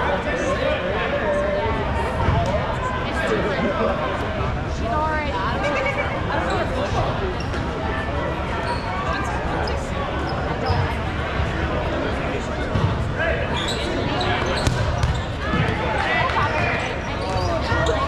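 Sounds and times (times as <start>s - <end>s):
sneaker squeaks: 7.4s - 7.7s, 8.6s - 11.0s, 12.7s - 15.7s, 16.4s - 18.0s
balls bouncing on gym floor: 14.4s - 17.5s.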